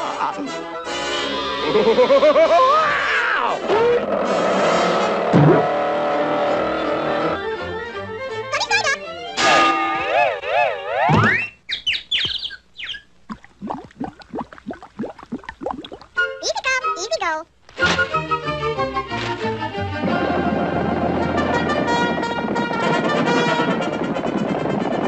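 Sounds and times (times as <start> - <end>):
orchestral cartoon music: 0.0 - 2.7, 6.9 - 11.1, 17.8 - 24.3.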